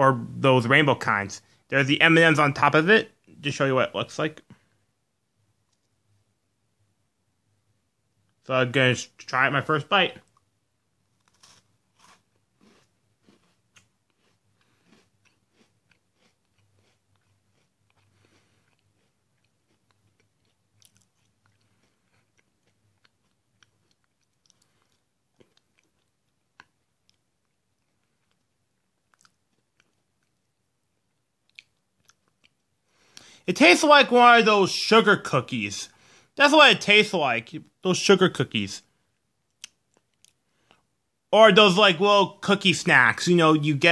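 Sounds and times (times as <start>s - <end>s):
crispy snack crunching: 10.2s - 33.3s.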